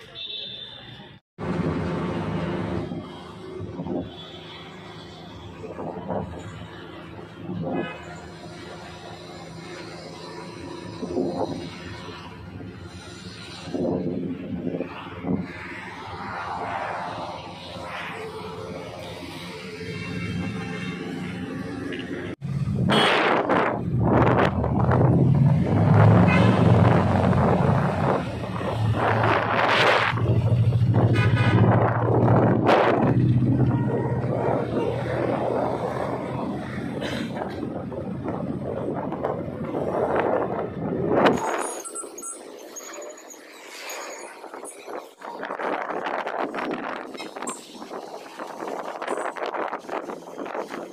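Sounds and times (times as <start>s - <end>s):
passing traffic: 0.0s - 50.9s
street traffic: 0.0s - 50.9s
wind rumbling on microphone: 9.6s - 19.7s, 21.8s - 42.8s, 43.4s - 50.9s.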